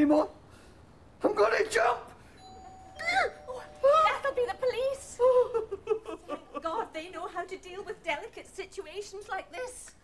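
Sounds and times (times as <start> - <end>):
doorbell ringing: 2.4 - 5.3.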